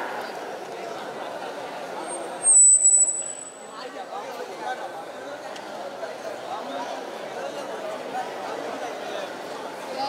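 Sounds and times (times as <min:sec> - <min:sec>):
murmur of voices: 0:00.0 - 0:10.0
high-pitched microphone feedback squeal: 0:02.4 - 0:03.7.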